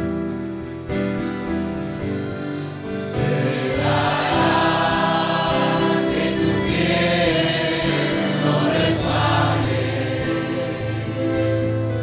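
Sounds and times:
congregation singing a hymn: 0:03.1 - 0:12.0.

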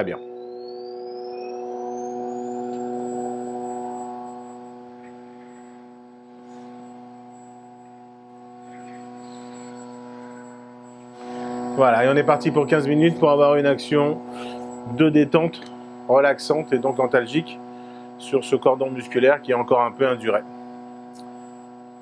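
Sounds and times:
faint high whine: 0:00.0 - 0:22.0
vibration unit buzzing: 0:00.0 - 0:22.0.

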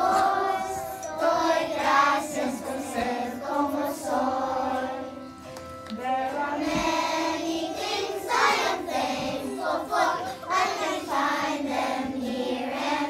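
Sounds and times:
children singing in unison: 0:00.0 - 0:13.0.

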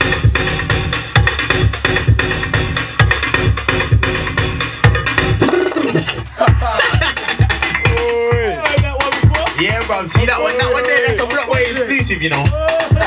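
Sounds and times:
electronic dance music: 0:00.0 - 0:13.0.

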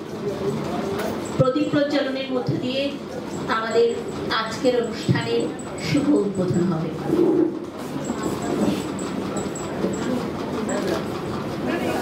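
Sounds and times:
woman speaking into a microphone: 0:01.4 - 0:07.3.

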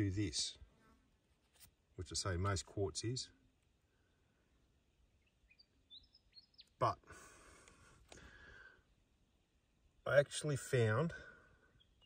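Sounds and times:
faint bird chirps: 0:03.8 - 0:10.2, 0:11.1 - 0:12.0.

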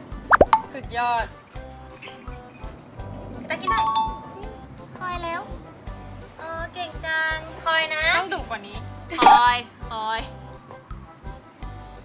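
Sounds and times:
light background music: 0:00.0 - 0:12.0
two-note doorbell chime: 0:03.7 - 0:04.5.

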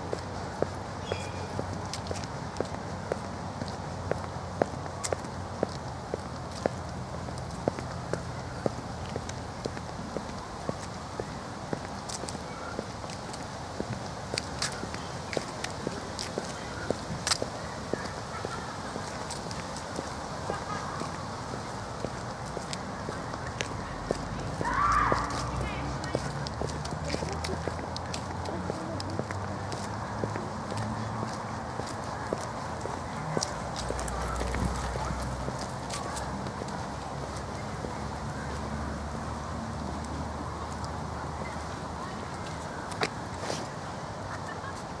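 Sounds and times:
footsteps on park path: 0:00.0 - 0:45.0.

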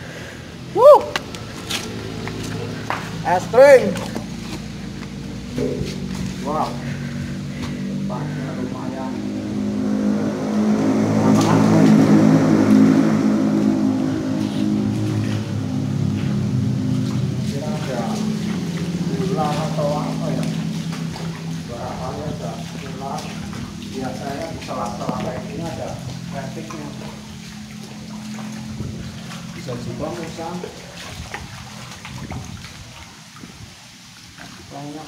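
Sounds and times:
vehicle engine hum echoing: 0:00.0 - 0:33.1
voices: 0:00.6 - 0:31.1.

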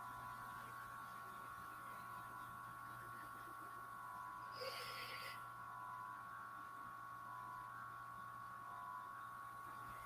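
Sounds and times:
faint electrical hum: 0:00.0 - 0:10.0
thin high whine: 0:00.0 - 0:10.0.

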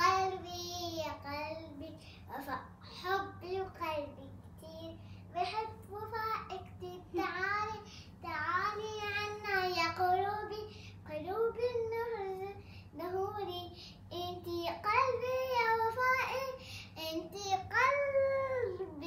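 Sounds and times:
child singing unaccompanied: 0:00.0 - 0:19.0.

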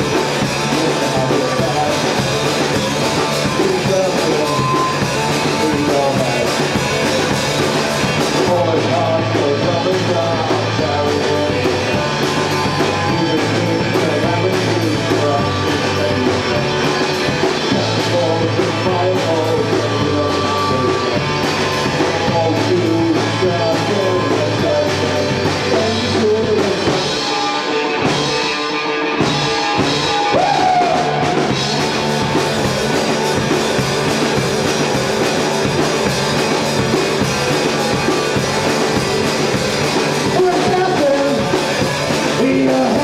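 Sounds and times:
drum beat: 0:00.0 - 0:28.5, 0:29.2 - 0:43.0
bass guitar notes: 0:00.0 - 0:43.0
electric guitars: 0:00.0 - 0:43.0.

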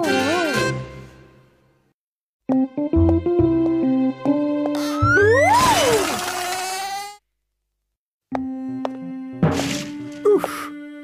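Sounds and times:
cartoon swooping tone: 0:04.8 - 0:07.2.

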